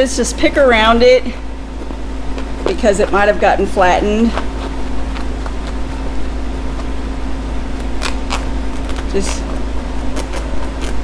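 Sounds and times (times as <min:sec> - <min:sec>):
constant mid-pitched tone: 0:00.0 - 0:07.8
steady low hum: 0:00.0 - 0:11.0.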